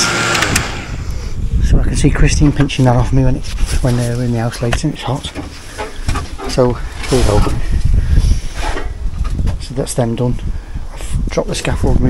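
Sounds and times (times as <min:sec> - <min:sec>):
fan blowing air: 0:00.0 - 0:12.0
person speaking: 0:01.6 - 0:07.8, 0:11.0 - 0:12.0.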